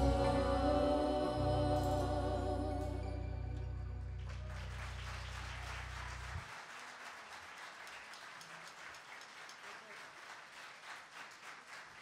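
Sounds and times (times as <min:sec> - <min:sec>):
low held bass note: 0:00.0 - 0:06.3
audience applause: 0:04.2 - 0:12.0.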